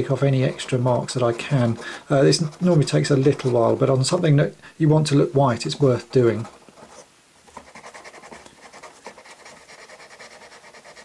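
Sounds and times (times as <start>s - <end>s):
cotton swab scratching plastic: 0.0s - 4.3s, 5.9s - 11.0s.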